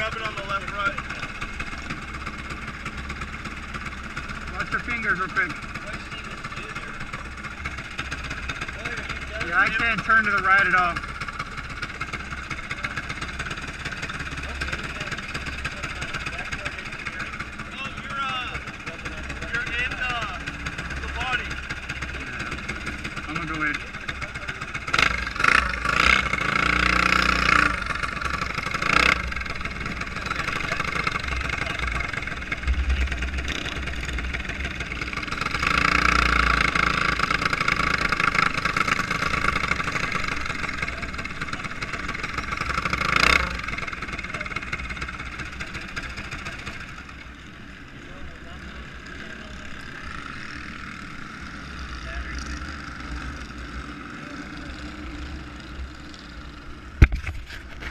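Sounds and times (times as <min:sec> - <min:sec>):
go-kart engine running: 0:00.0 - 0:57.9.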